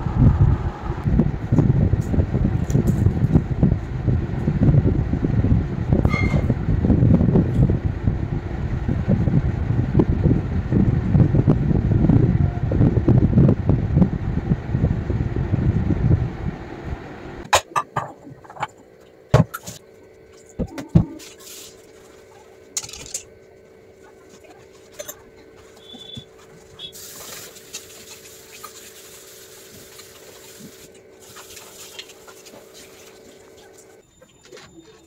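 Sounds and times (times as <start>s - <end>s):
fan airflow buffeting microphone: 0.0s - 34.0s.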